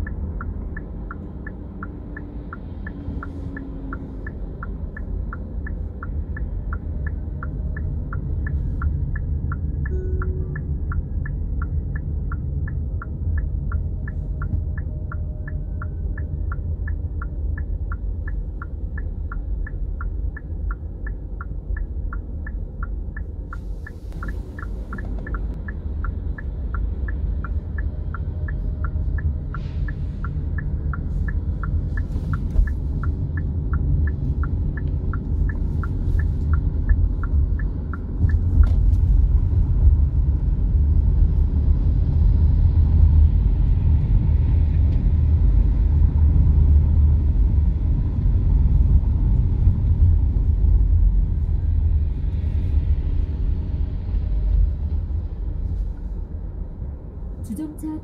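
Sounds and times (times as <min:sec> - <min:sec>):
turn signal ticking: 0:00.0 - 0:41.2
car road and engine rumble: 0:00.0 - 0:58.0.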